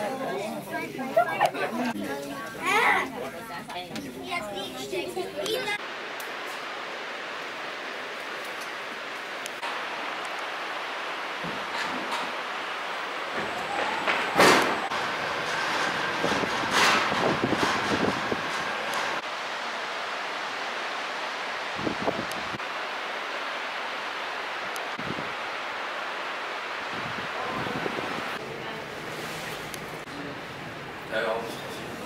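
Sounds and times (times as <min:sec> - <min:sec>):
cable car cabin rushing: 0:08.7 - 0:19.7.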